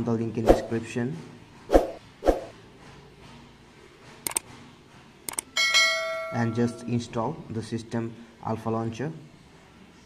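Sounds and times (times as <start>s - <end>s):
quick clicks: 4.2s - 4.4s.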